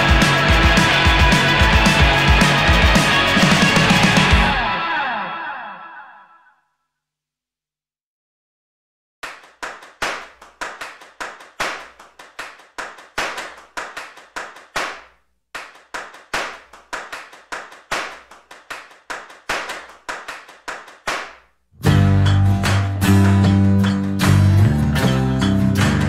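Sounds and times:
hand claps: 0.0s - 4.4s, 9.2s - 26.0s.

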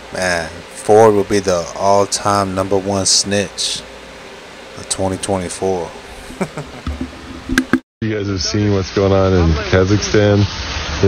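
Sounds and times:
man laughing quietly: 6.0s - 7.3s.

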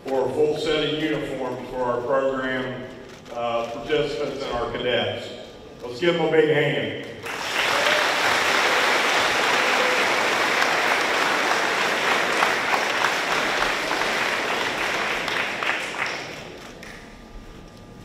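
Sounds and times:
audience applauding: 7.2s - 17.1s.

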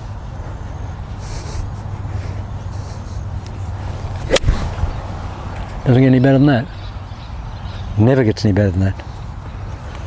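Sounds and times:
golf club striking ball: 4.2s - 5.8s.

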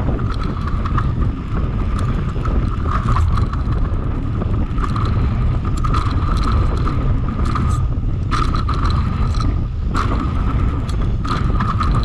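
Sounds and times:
bike clicks and rattles: 0.0s - 12.0s
tyres rumbling over dirt: 0.0s - 12.0s
wind buffeting microphone: 0.0s - 12.0s.

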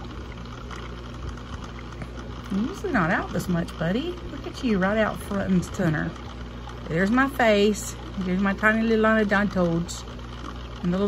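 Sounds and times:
aquarium equipment humming: 0.0s - 11.0s
water bubbling and trickling: 0.0s - 11.0s.

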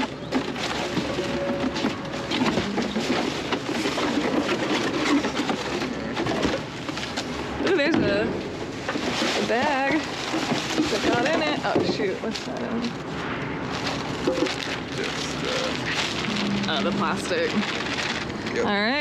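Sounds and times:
cardboard and plastic rustling: 0.0s - 19.0s.

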